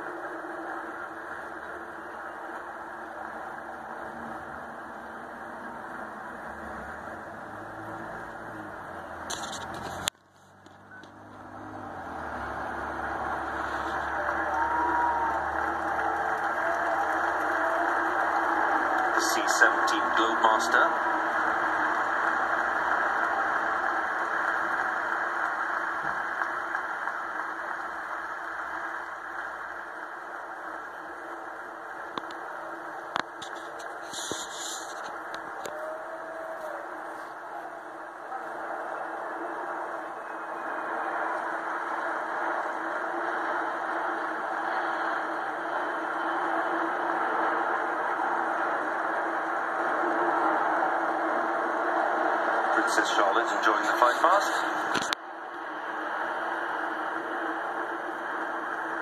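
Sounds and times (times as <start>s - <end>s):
jet engine rumble through tv speaker: 0.0s - 59.0s.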